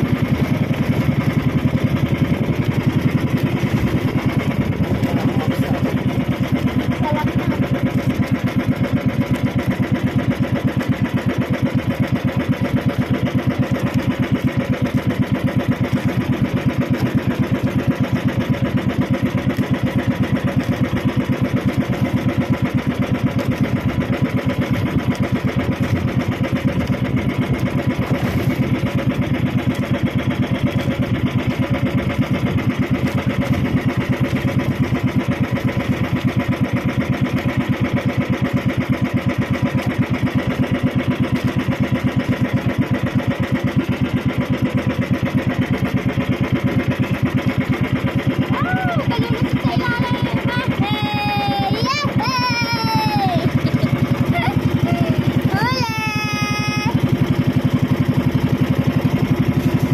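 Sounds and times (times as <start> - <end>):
boat engine puttering: 0.0 - 59.9.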